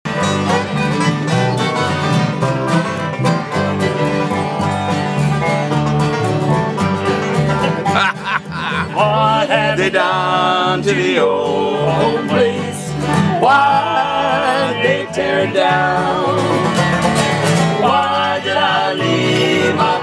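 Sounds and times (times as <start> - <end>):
strummed guitars playing country: 0.1 - 20.0
person singing: 8.4 - 16.8, 17.8 - 20.0.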